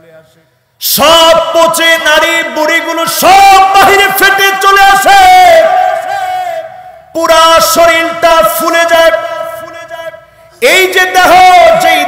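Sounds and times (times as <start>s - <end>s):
man chanting amplified sermon: 0.8s - 12.0s.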